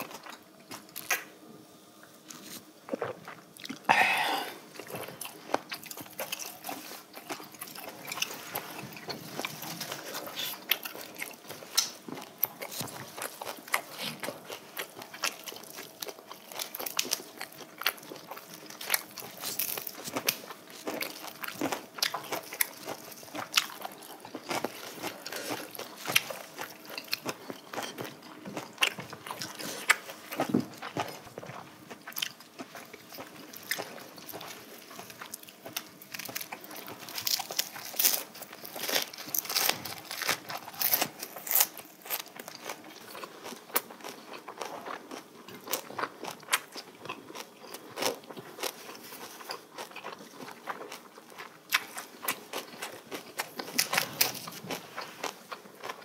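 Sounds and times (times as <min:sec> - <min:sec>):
chewing and crunching: 0:00.0 - 0:01.4, 0:02.0 - 0:56.0.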